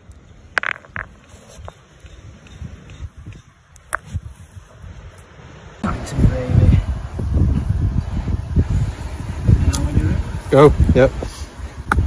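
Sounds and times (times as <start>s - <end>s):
stone clicking on stone: 0.1s - 2.6s.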